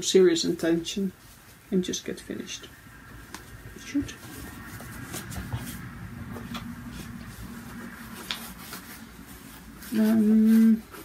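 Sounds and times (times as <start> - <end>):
faint rustles: 1.1 - 11.0.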